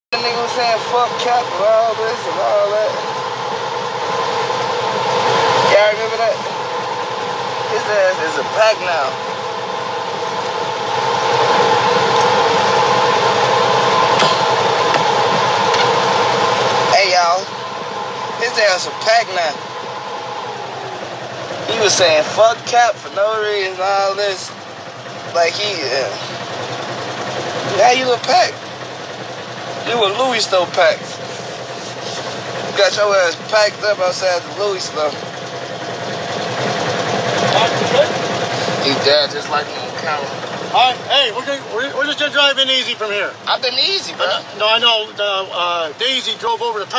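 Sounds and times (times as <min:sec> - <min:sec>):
vehicle engine running: 0:00.0 - 0:46.9
faint voices: 0:00.1 - 0:28.7, 0:36.3 - 0:46.9.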